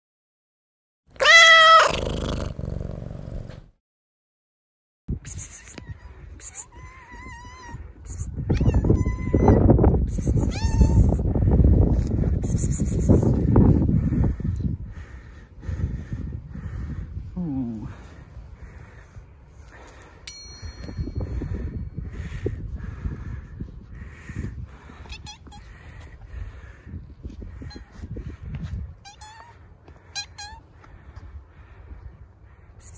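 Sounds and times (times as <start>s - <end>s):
cat meowing: 1.2s - 2.1s, 5.5s - 9.7s, 10.3s - 11.2s, 25.0s - 25.7s, 29.0s - 30.6s
bell ding chime: 20.3s - 21.9s.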